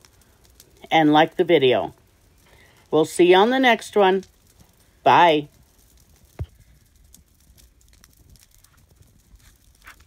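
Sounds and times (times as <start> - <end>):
light crackles and ticks: 0.0 - 10.0
branches rustling: 5.6 - 10.0.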